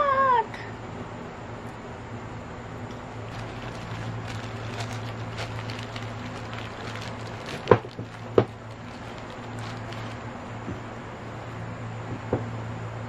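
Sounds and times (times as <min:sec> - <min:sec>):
low steady hum: 0:00.0 - 0:13.0
paper wrapper crinkling: 0:02.9 - 0:10.5.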